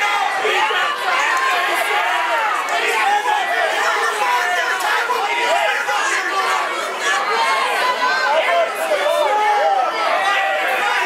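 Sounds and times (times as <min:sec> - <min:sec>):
crowd shouting and talking: 0:00.0 - 0:11.0.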